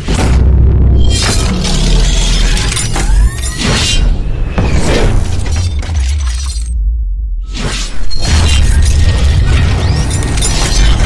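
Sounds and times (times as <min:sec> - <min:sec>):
music with heavy bass rumble: 0:00.0 - 0:03.0.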